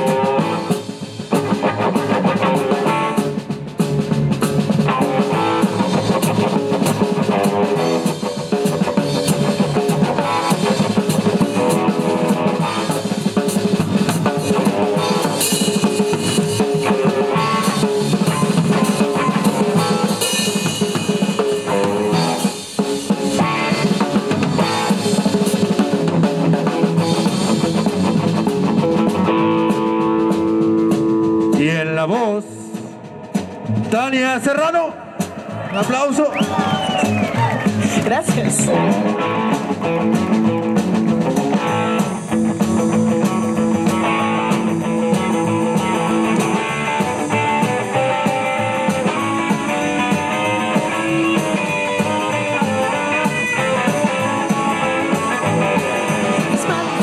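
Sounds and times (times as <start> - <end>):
drums and cymbals: 0.0 - 57.0
swing band playing: 0.0 - 57.0.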